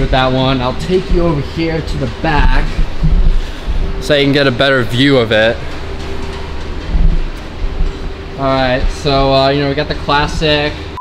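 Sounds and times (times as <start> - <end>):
dull thumps: 0.0 - 4.6, 5.6 - 9.4.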